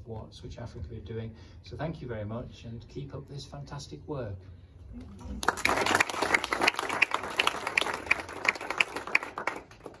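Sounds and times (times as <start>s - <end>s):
audience applauding: 5.3s - 10.0s
close loud claps: 5.4s - 10.0s.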